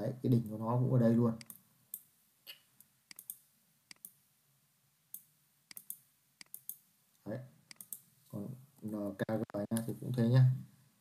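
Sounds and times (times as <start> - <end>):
computer mouse and keyboard clicks: 3.1 - 4.2, 5.2 - 6.8, 7.7 - 8.0.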